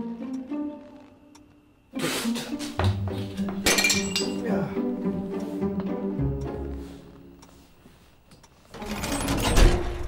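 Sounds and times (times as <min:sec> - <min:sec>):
orchestral film score strings: 0:00.0 - 0:03.6, 0:04.4 - 0:07.4.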